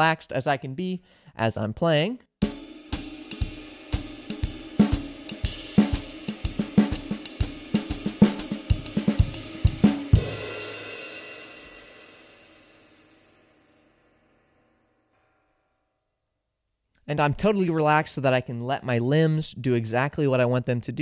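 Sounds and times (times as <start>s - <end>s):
jazz drum kit playing: 2.4s - 14.1s.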